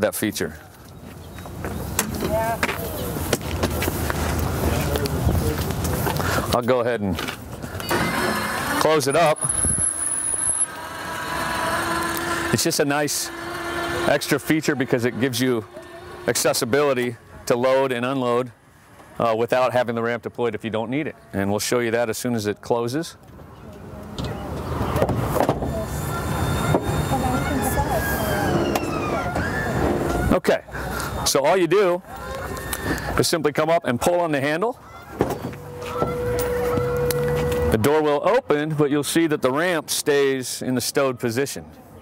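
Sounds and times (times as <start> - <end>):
wheelchair ramp electric drive: 7.7 - 17.5, 24.5 - 31.2, 34.9 - 37.8
mechanical running with whine: 7.9 - 17.5, 25.6 - 30.3, 35.5 - 37.8
faint voices: 11.0 - 19.9, 23.4 - 33.3, 34.6 - 38.1
high thin whine: 25.3 - 30.4, 35.5 - 37.9.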